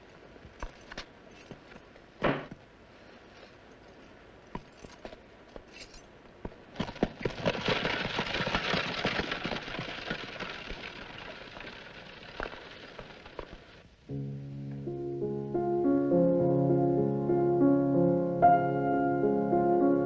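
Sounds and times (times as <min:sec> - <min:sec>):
horse hooves: 0:00.0 - 0:13.9.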